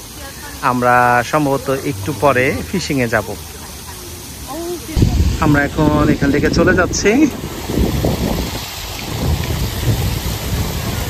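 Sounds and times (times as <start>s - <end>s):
wind buffeting microphone: 1.1s - 11.0s.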